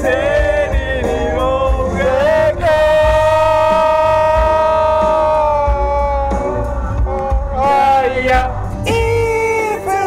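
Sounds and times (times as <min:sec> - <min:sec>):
man singing a long note: 0:00.2 - 0:10.0.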